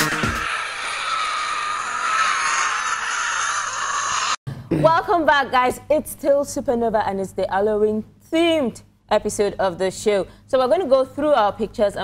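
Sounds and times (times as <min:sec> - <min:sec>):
electronic dance music: 0:00.0 - 0:00.4
airy hissing sound effect: 0:00.0 - 0:04.4.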